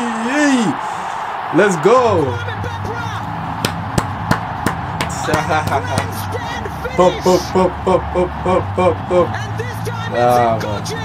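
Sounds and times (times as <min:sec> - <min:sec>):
sports commentary: 0:00.0 - 0:03.6, 0:05.0 - 0:11.0
crowd noise: 0:00.0 - 0:11.0
hand clapping: 0:03.6 - 0:06.2.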